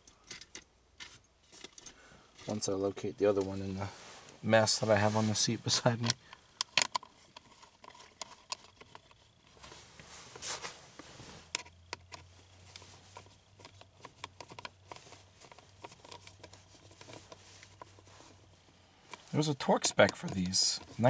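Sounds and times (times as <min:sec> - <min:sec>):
small clicks and taps: 0:06.0 - 0:09.2, 0:11.5 - 0:17.9.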